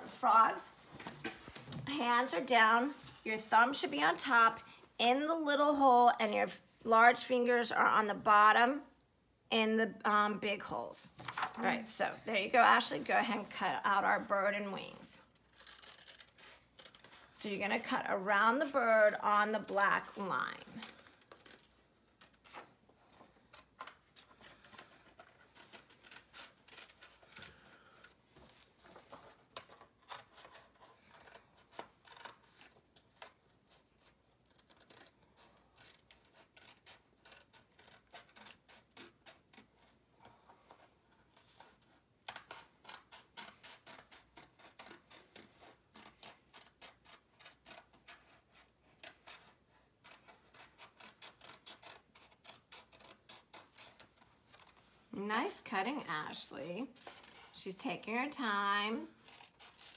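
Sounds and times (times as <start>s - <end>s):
scissors snipping paper: 29.6s - 40.4s, 41.2s - 54.8s, 59.0s - 59.9s.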